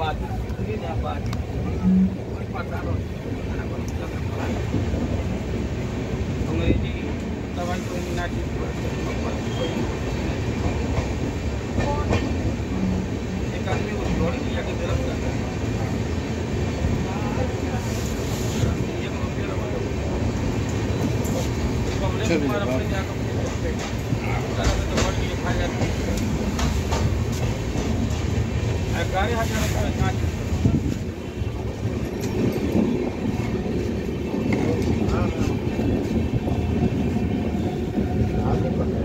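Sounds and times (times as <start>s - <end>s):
faint passenger voices: 0.0s - 39.0s
train wheels rumbling on rails: 0.0s - 39.0s.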